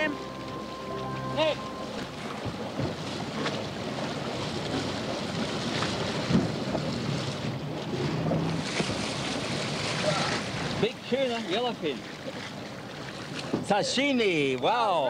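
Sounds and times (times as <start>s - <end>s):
rush of water: 0.0s - 15.0s
wind on microphone: 1.4s - 10.8s
fish thrashing and splashing water: 1.8s - 13.8s.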